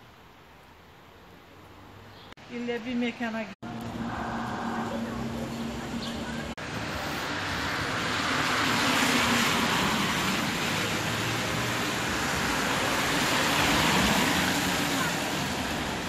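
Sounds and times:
cars passing with tyre hiss: 3.6 - 16.0.

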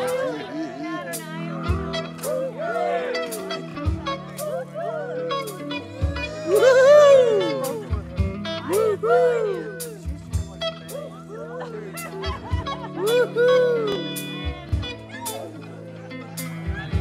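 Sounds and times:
electric guitar lead bending notes: 0.0 - 17.0
organ chords: 1.0 - 17.0
drum and cymbal hits: 9.8 - 11.0.

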